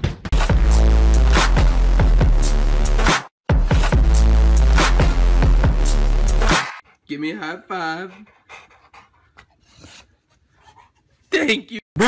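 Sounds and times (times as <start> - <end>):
dog panting: 6.8 - 11.3.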